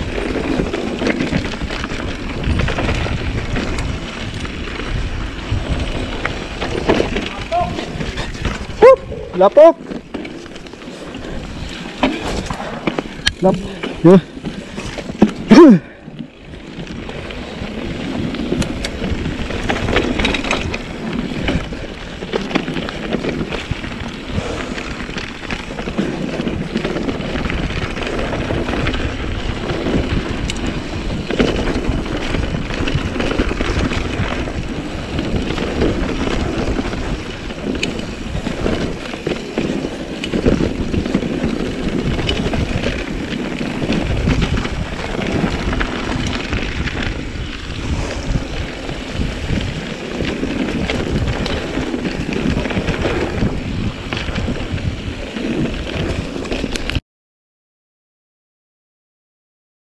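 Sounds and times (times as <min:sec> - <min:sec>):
bike tyres rumbling on dirt: 0:00.0 - 0:57.0
wind buffeting microphone: 0:00.0 - 0:57.0.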